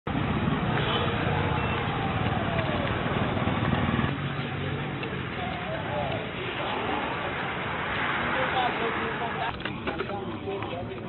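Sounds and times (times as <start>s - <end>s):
road traffic noise: 0.0s - 11.0s
vehicle engine running: 0.1s - 9.3s.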